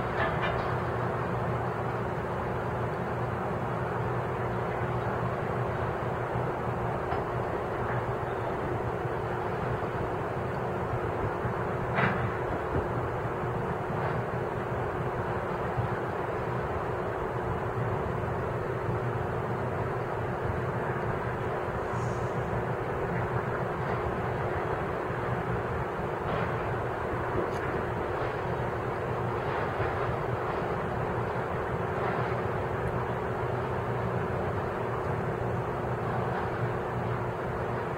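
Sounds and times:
diesel engine humming: 0:00.0 - 0:37.9.

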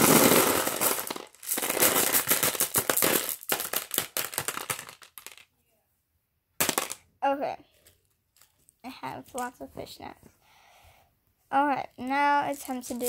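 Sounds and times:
glass marbles pouring and clattering: 0:00.0 - 0:05.4.

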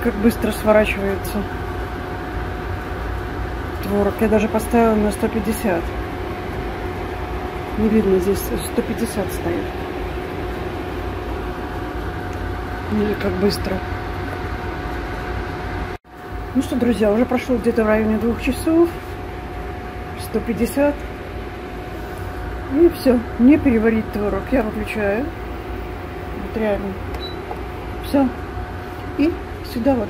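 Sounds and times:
faint whine: 0:00.0 - 0:30.0
induction cooktop fan hum: 0:00.0 - 0:30.0.

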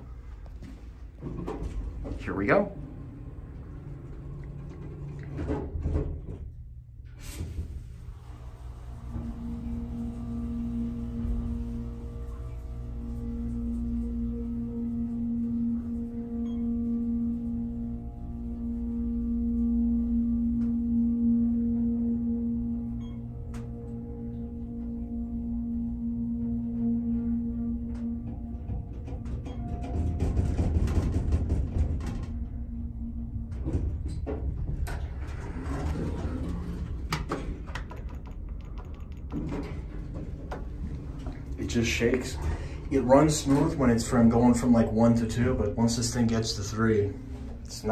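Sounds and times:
elevator car rumbling: 0:00.0 - 0:47.9
elevator pump humming: 0:00.0 - 0:47.9
knocks and clicks: 0:27.9 - 0:41.5.

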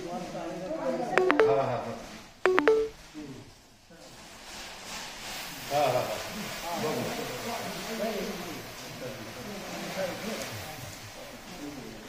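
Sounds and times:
electronic two-note tone with click: 0:01.2 - 0:01.6, 0:02.5 - 0:02.9.

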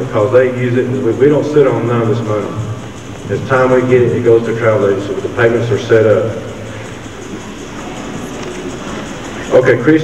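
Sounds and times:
gymnasium room hiss: 0:00.0 - 0:10.0.

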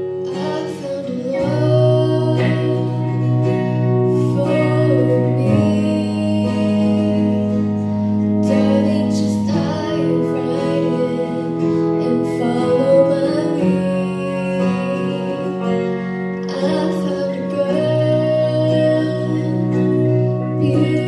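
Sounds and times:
live band with guitars and keyboard: 0:00.0 - 0:21.0
woman singing: 0:00.0 - 0:21.0.

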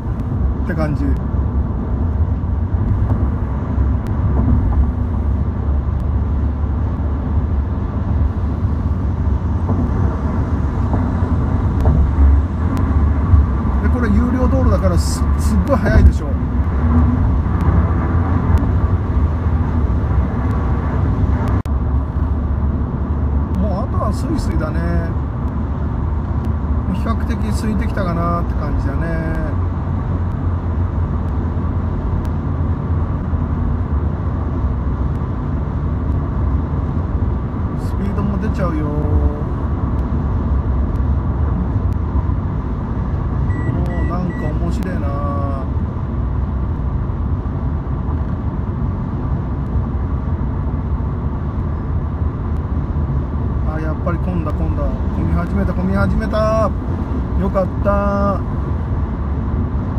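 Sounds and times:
car cabin road rumble: 0:00.0 - 0:59.9.

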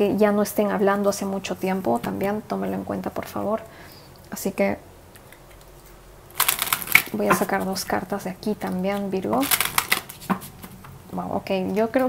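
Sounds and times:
cards being shuffled: 0:06.4 - 0:07.8, 0:09.4 - 0:10.8.

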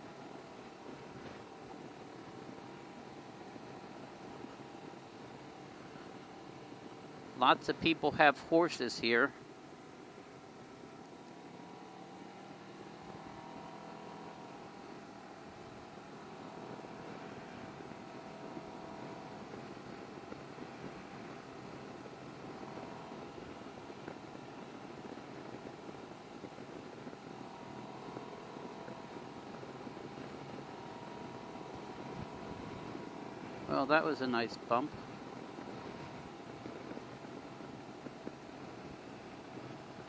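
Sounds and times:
wind and road noise: 0:00.0 - 0:40.0
motorcycle engine running: 0:09.3 - 0:40.0.

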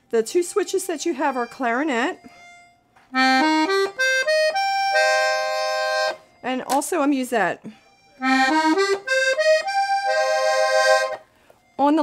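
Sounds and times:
accordion notes: 0:00.0 - 0:12.0.

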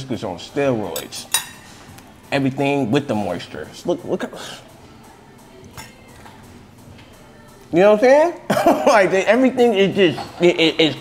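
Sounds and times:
tableware clink: 0:00.9 - 0:01.8.

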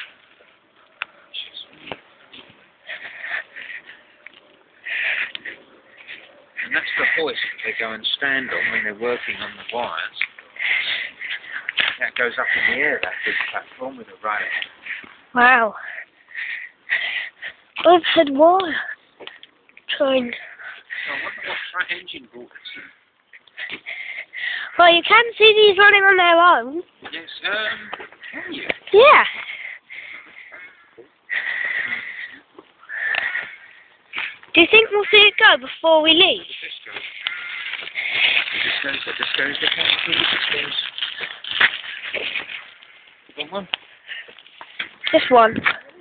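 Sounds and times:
person breathing close to microphone: 0:29.3 - 0:34.5.

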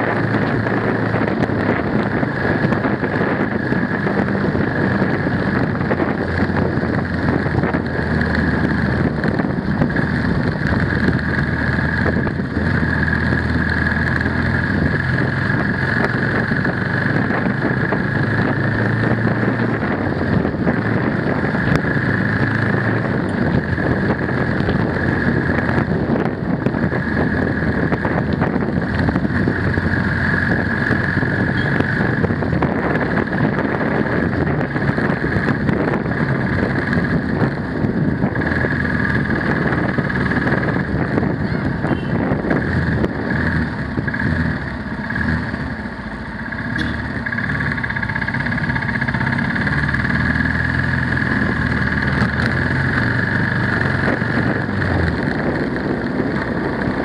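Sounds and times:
high whine: 0:00.0 - 0:57.0
motorcycle engine running: 0:00.0 - 0:57.0
wind and road noise: 0:00.0 - 0:57.0.

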